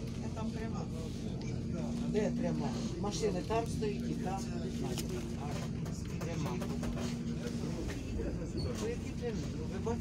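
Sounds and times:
bus engine idling: 0.0s - 10.0s
people talking: 0.0s - 10.0s.

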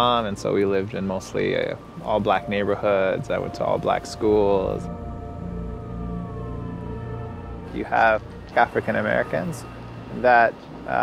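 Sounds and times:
sustained film score tones: 0.0s - 11.0s
thin tone sliding downward: 0.5s - 11.0s.

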